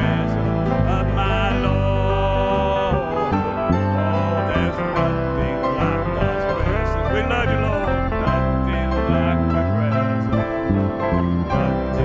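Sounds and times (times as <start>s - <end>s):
acoustic guitar: 0.0s - 12.0s
man singing gospel song: 0.0s - 12.0s.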